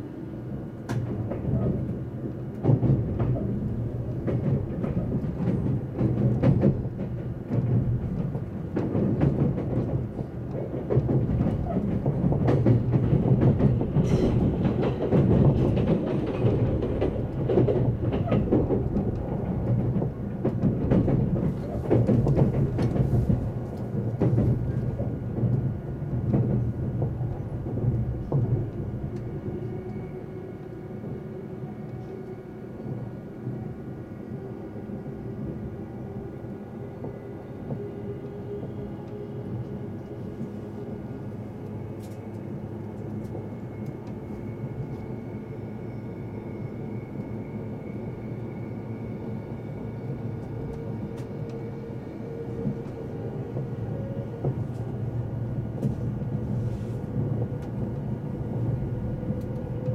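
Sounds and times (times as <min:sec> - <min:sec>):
train wheels rumbling and clattering: 0:00.0 - 0:59.9.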